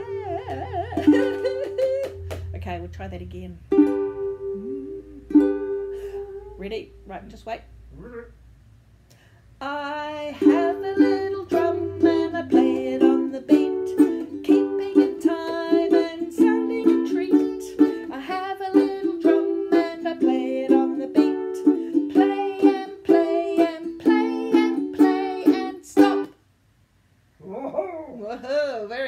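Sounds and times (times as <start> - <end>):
ukulele strumming chords: 0.0 - 6.6, 10.2 - 26.4.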